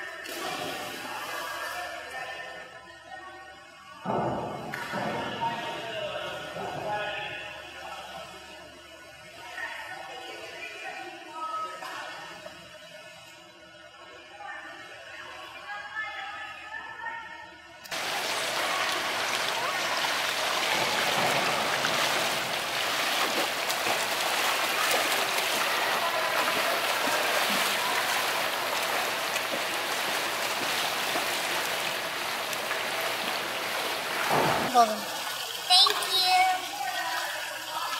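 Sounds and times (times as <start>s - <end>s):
swimmer splashing water: 17.9s - 37.9s.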